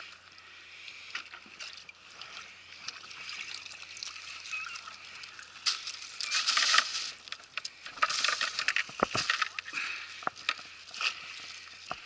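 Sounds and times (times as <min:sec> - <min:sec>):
seawater splashing and trickling: 0:00.0 - 0:12.0.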